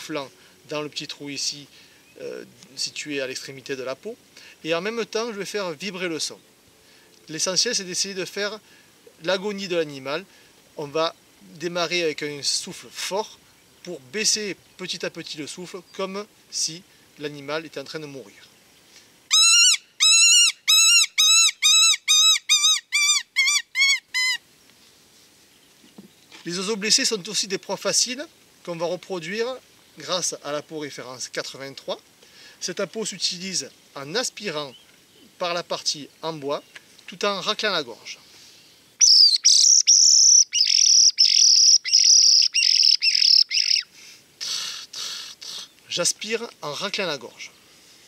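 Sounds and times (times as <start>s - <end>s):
rabbit distress call: 19.3s - 24.4s.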